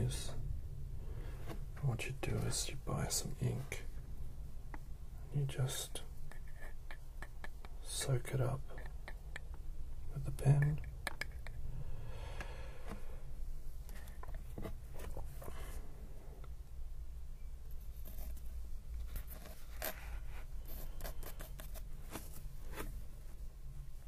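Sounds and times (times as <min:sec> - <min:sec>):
light clicks and taps: 0:10.4 - 0:11.6
soft scrapes and rustles: 0:13.8 - 0:15.9, 0:17.7 - 0:24.0.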